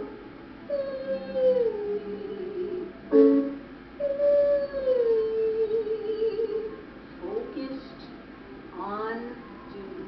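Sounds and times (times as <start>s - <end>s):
woman singing a gliding vowel: 0.7s - 6.8s.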